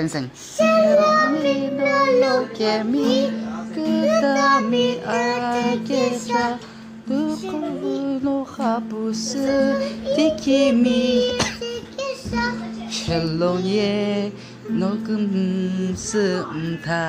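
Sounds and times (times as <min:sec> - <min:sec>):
child singing: 0:00.5 - 0:17.0.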